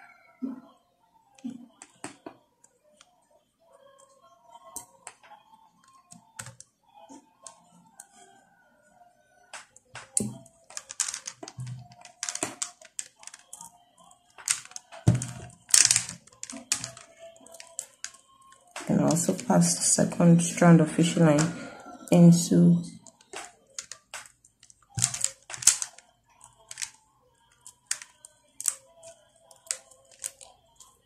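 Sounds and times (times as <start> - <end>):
beads clicking and clattering: 9.6 - 13.7, 14.3 - 21.6, 23.0 - 31.0.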